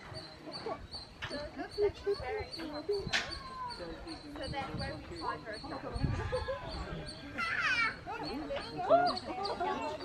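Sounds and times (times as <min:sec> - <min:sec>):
people talking: 0:00.1 - 0:10.0.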